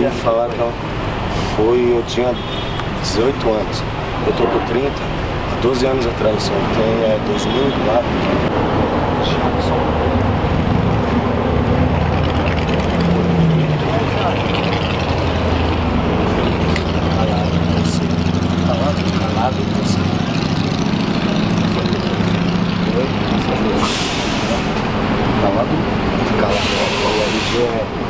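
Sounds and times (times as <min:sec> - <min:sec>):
vehicle engine running: 0:08.3 - 0:28.0
indistinct voices: 0:12.1 - 0:28.0.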